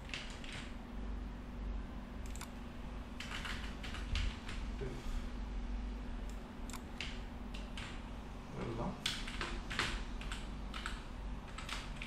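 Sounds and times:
typing on computer keyboard: 0:00.0 - 0:00.7, 0:03.2 - 0:04.6, 0:06.7 - 0:08.0, 0:09.0 - 0:12.0
steady low hum: 0:00.0 - 0:12.0.

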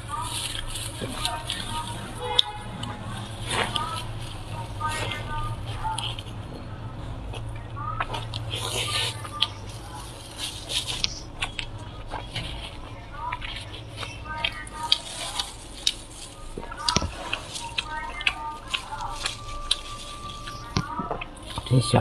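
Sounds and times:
chewing and mouth sounds: 0:00.0 - 0:22.0.

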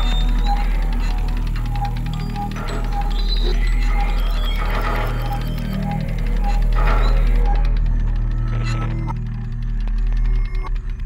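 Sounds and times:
mechanical clicks and ticks: 0:00.0 - 0:11.0
steady low hum: 0:00.0 - 0:11.0.

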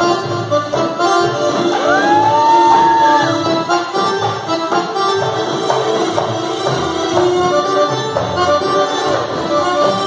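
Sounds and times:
keyboard melody: 0:00.0 - 0:10.0.

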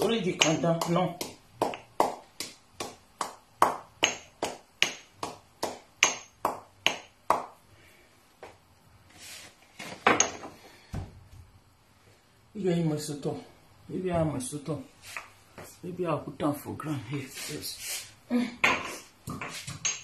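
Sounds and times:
pestle pounding in mortar: 0:00.0 - 0:07.6.

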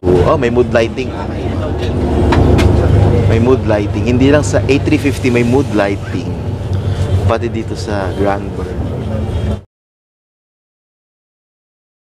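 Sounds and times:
bus engine rumble: 0:00.0 - 0:09.7
road noise: 0:00.0 - 0:09.7.

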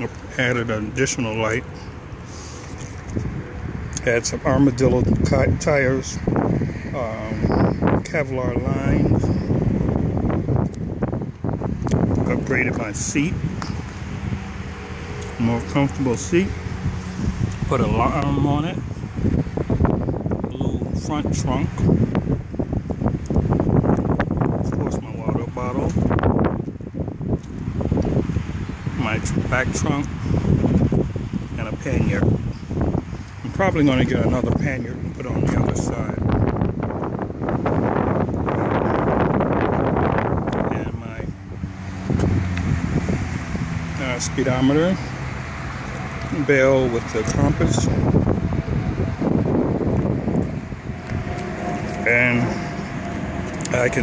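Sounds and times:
wind rumbling on microphone: 0:00.0 - 0:54.0.

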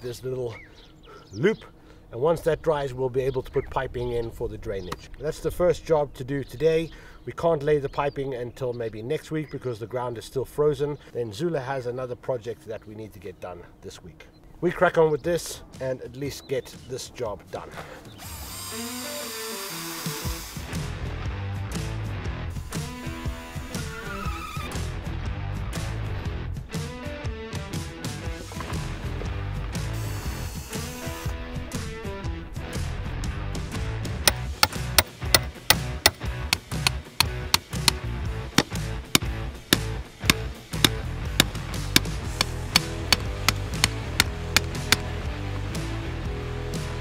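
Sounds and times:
background music: 0:24.8 - 0:47.0
hammer driving stakes: 0:34.3 - 0:45.2.

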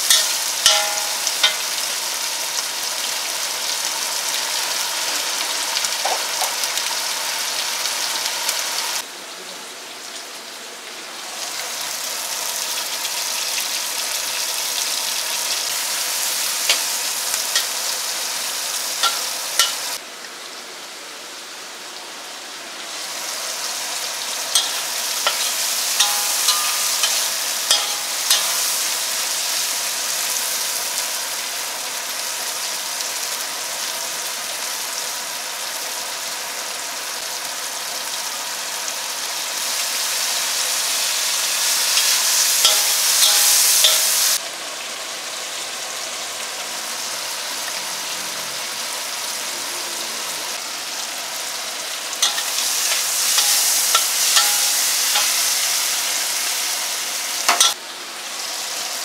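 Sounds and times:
food sizzling in hot oil: 0:00.0 - 0:09.1, 0:11.1 - 0:20.6, 0:22.3 - 0:59.0
metal spatula clicking on wok: 0:00.1 - 0:01.8, 0:19.0 - 0:19.8, 0:24.6 - 0:28.8, 0:42.0 - 0:44.1, 0:52.2 - 0:55.4, 0:57.5 - 0:57.8.

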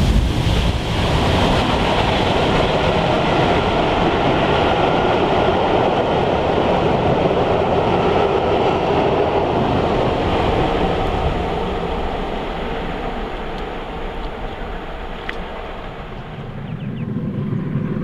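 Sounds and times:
train rumbling past on rails: 0:00.0 - 0:18.0.

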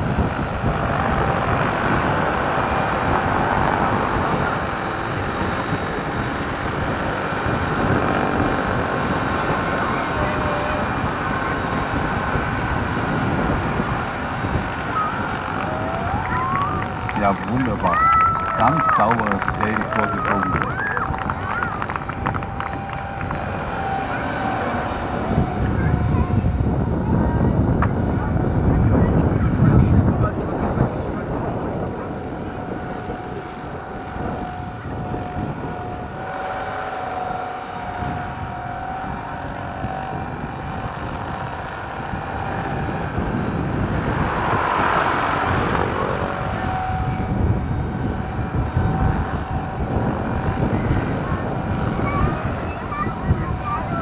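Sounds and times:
electric motor high whine: 0:00.0 - 0:54.0
helicopter rotors chopping: 0:00.0 - 0:54.0.

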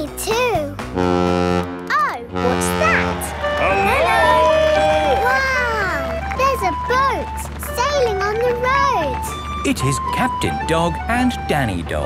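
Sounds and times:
ship's horn blasts: 0:00.9 - 0:06.4.

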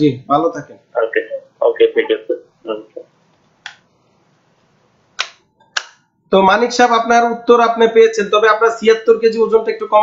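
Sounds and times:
man's voice: 0:00.6 - 0:03.0
sharp click: 0:05.2 - 0:06.0.

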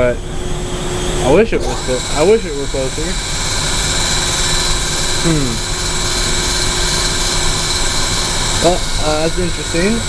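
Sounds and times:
faint high whine: 0:00.0 - 0:10.0
machinery running: 0:01.1 - 0:10.0.

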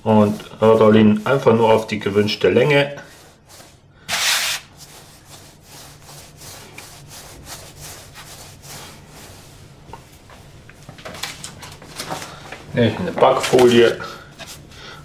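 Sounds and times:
soft rubbing strokes: 0:00.0 - 0:10.9
hands rolling dough on wood: 0:00.0 - 0:11.1.

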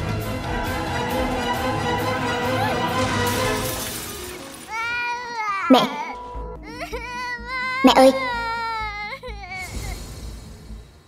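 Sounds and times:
dramatic film music: 0:00.0 - 0:11.0
glass shattering crash: 0:03.3 - 0:05.0
boy wailing and crying out: 0:04.2 - 0:10.0.

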